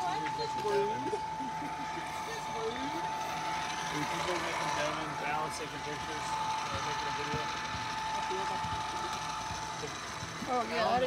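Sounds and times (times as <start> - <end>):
high-pitched hum: 0.0 - 11.0
people talking in background: 0.0 - 11.0.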